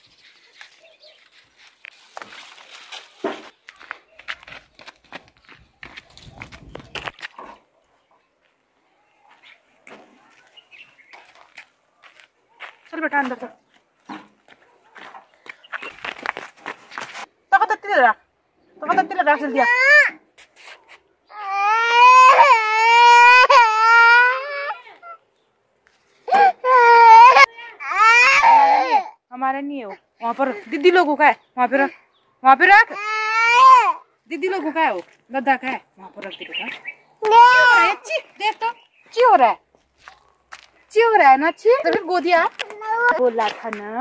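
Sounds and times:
rough scraping on ground: 0:00.0 - 0:07.4, 0:15.0 - 0:17.3
footsteps on gravel: 0:00.0 - 0:07.5, 0:09.3 - 0:17.3, 0:34.6 - 0:35.3, 0:38.2 - 0:40.9, 0:41.7 - 0:44.0
toddler crying loudly: 0:21.3 - 0:25.2, 0:26.3 - 0:29.2, 0:32.9 - 0:34.0, 0:37.2 - 0:38.0.

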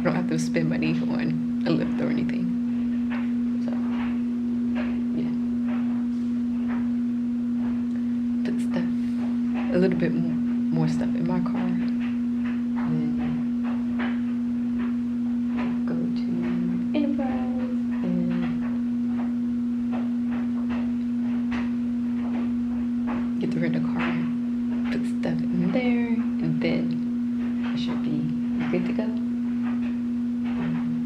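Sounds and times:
steady one-pitch hum: 0:00.0 - 0:31.0.

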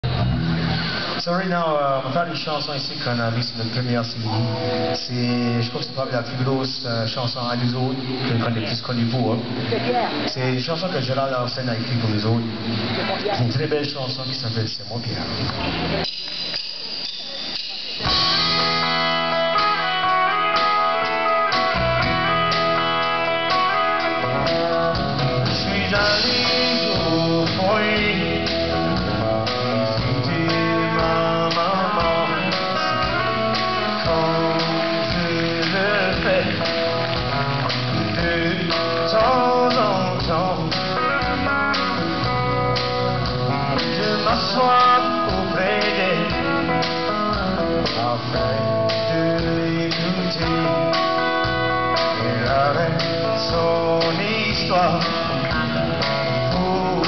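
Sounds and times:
acoustic guitars playing: 0:00.0 - 0:10.4, 0:15.1 - 0:57.0.

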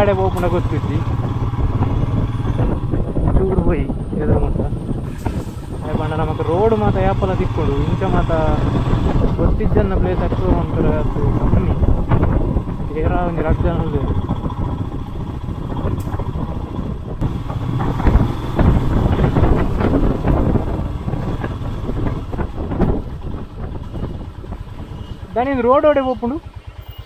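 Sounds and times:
motorcycle engine at low speed: 0:00.0 - 0:27.0.

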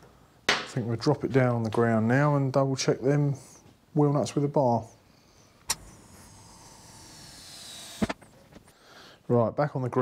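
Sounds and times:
hydraulic hiss with falling whine: 0:05.6 - 0:08.7.

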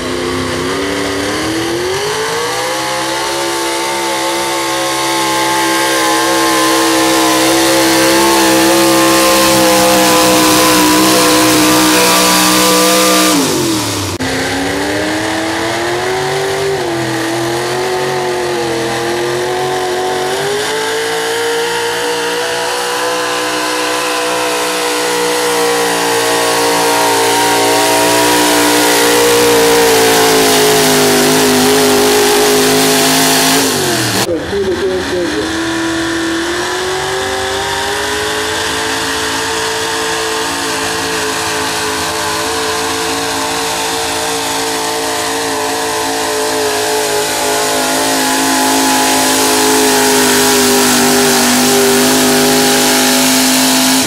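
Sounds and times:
truck engine at high revs: 0:00.0 - 0:54.0.

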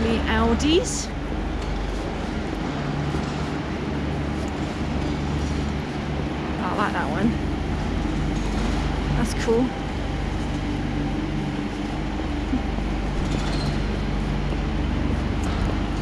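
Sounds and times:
indoor hall hum: 0:00.0 - 0:16.0.

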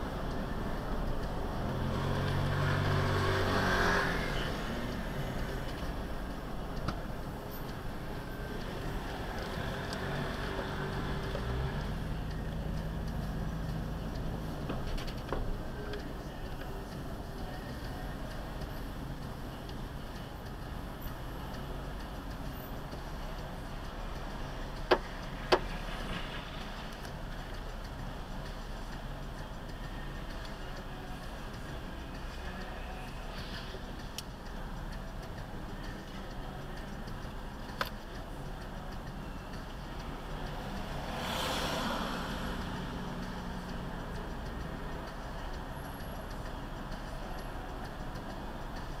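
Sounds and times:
car road and engine noise: 0:00.0 - 0:49.0
sharp clicks: 0:04.5 - 0:49.0.

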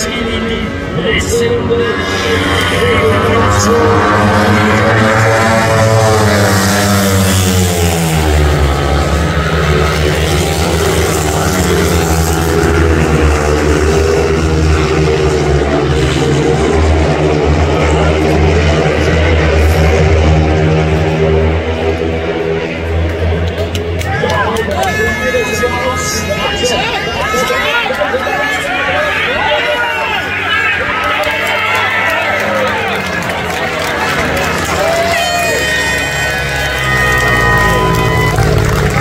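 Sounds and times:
racing motorcycles at full throttle: 0:00.0 - 0:39.0.

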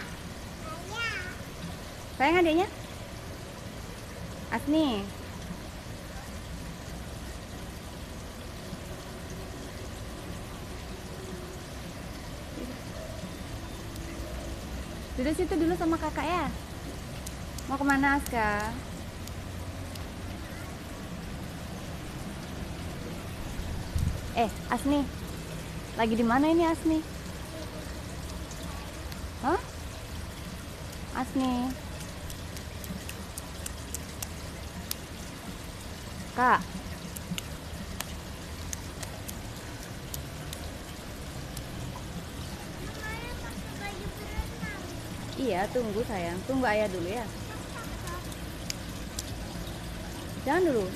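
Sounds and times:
pool water trickling: 0:00.0 - 0:50.9.

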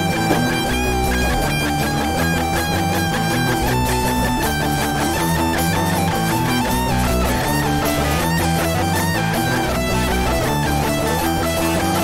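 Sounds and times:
held electric guitar note: 0:00.0 - 0:12.0
punk rock band playing: 0:00.0 - 0:12.0.

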